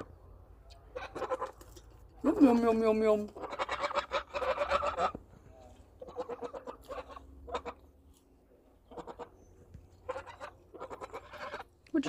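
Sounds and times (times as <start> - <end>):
geese calling: 0.8 - 2.4, 3.1 - 11.7.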